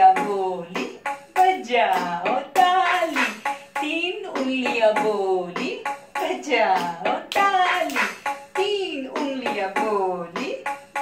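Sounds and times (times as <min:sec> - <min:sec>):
woman singing: 0:00.0 - 0:10.8.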